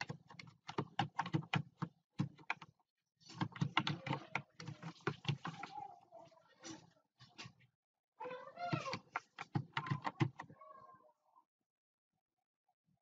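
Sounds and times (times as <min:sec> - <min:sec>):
typing on computer keyboard: 0:00.0 - 0:05.7, 0:08.7 - 0:10.5.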